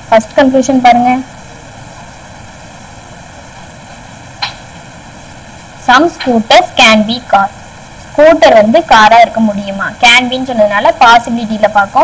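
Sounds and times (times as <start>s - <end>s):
woman speaking: 0.0s - 1.3s, 5.8s - 7.5s, 8.2s - 12.0s
recording hiss: 0.0s - 12.0s.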